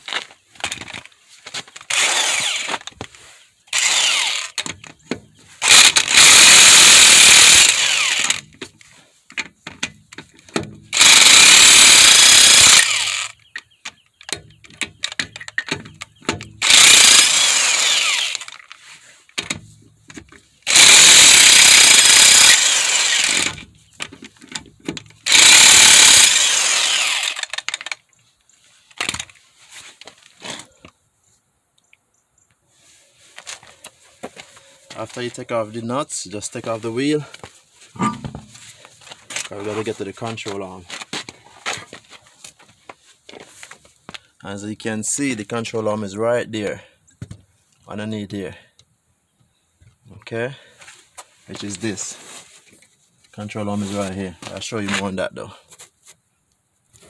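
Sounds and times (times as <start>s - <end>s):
impact wrench hammering: 38.0s - 38.6s.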